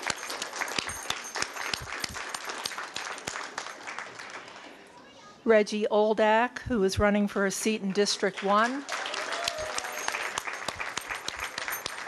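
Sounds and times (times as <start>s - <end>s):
small audience applauding: 0.0s - 4.8s, 8.3s - 12.0s.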